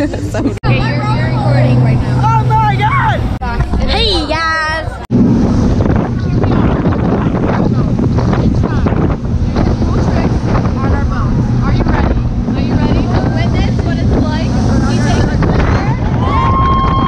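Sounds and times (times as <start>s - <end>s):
passengers calling out: 0.0s - 5.1s
boat engine running: 0.0s - 17.0s
wind buffeting microphone: 0.0s - 17.0s.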